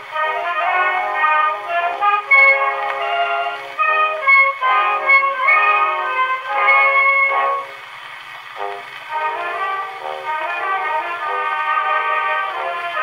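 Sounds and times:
orchestra playing a waltz: 0:00.0 - 0:13.0.

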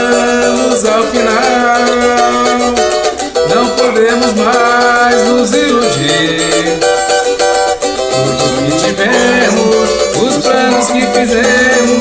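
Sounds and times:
small guitar strummed: 0:00.0 - 0:12.0.

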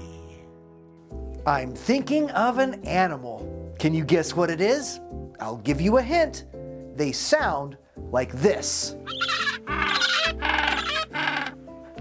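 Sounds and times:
background music: 0:00.0 - 0:12.0
penguin calling: 0:09.0 - 0:12.0.

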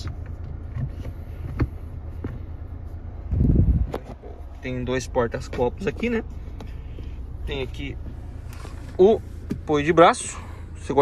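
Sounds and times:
low rumble of phone handling: 0:00.0 - 0:04.6
diesel engine idling inside cabin: 0:00.0 - 0:11.0.

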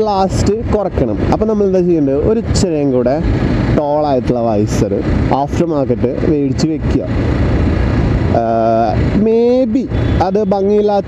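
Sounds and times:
man talking: 0:00.0 - 0:07.2, 0:08.3 - 0:11.0
motorcycle riding noise: 0:00.0 - 0:11.0
wind rumble: 0:00.0 - 0:11.0.

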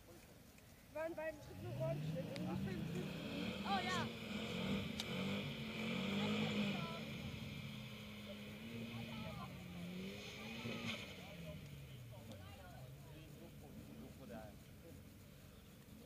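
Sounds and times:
crowd chatter: 0:00.0 - 0:16.0
distant racing car engines revving: 0:01.0 - 0:16.0.

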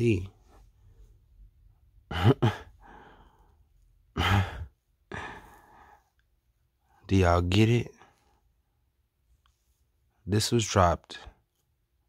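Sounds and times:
man sighing: 0:04.1 - 0:05.9.

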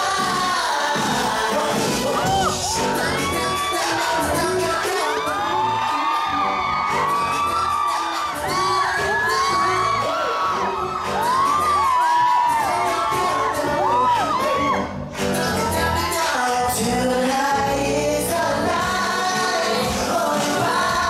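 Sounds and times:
crowd screaming and whooping: 0:00.0 - 0:16.9
pop music over sound system: 0:00.0 - 0:21.0.

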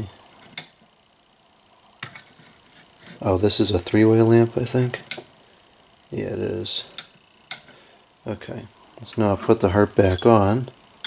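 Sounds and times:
lamp switch click: 0:07.0 - 0:07.7.

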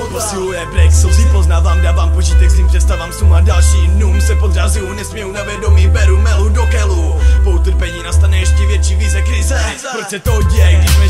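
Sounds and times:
heavy sub-bass line: 0:00.0 - 0:09.7, 0:10.3 - 0:11.0
hip-hop beat: 0:00.0 - 0:11.0
vocals over beat: 0:00.0 - 0:11.0.

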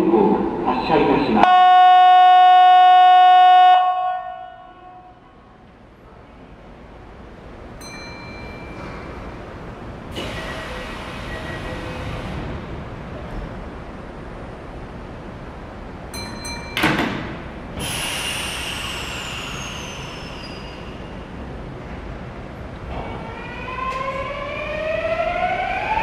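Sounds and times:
train humming: 0:00.0 - 0:26.0
station departure buzzer: 0:01.4 - 0:04.7
hiss of air: 0:17.8 - 0:21.1.

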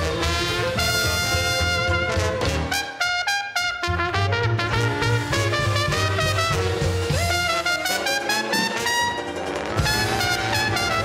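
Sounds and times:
jazz band playing live: 0:00.0 - 0:11.0
trumpet: 0:00.0 - 0:11.0.

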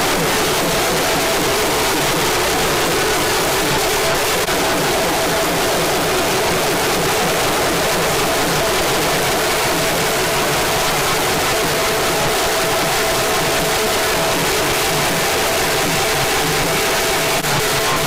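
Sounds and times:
crowd noise: 0:00.0 - 0:18.0
drums: 0:00.0 - 0:18.0.

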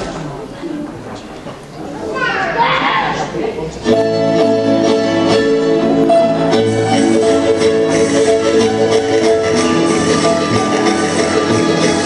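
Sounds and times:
indistinct chatter: 0:00.0 - 0:04.2.

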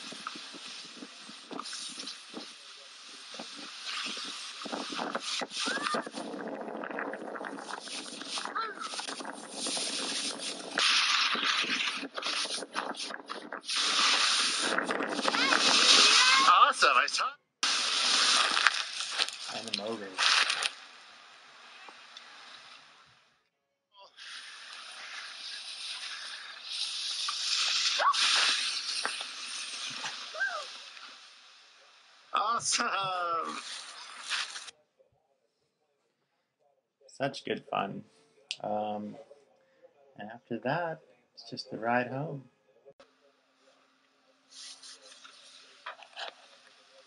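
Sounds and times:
skis hissing over snow: 0:00.0 - 0:06.4, 0:07.5 - 0:16.7, 0:17.6 - 0:20.8, 0:24.1 - 0:31.5, 0:32.4 - 0:34.7, 0:44.5 - 0:47.0
wind buffeting microphone: 0:03.3 - 0:16.2.

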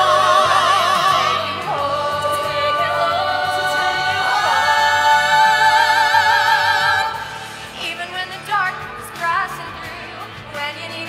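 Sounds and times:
group singing in harmony: 0:00.0 - 0:08.1.

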